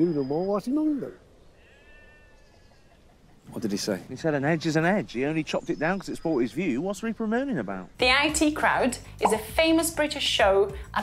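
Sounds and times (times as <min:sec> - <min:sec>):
faint animal cry: 0:01.5 - 0:03.3
man speaking: 0:03.5 - 0:08.0.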